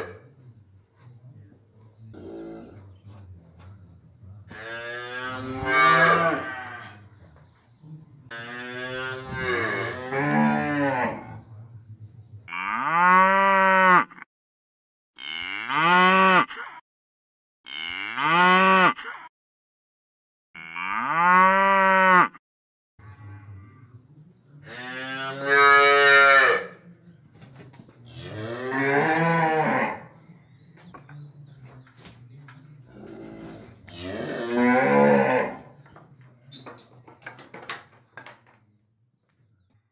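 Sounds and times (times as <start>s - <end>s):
cow mooing: 4.5s - 7.0s, 8.3s - 11.3s, 15.2s - 16.6s, 17.7s - 19.0s, 20.6s - 22.4s, 28.1s - 30.1s, 33.0s - 35.7s.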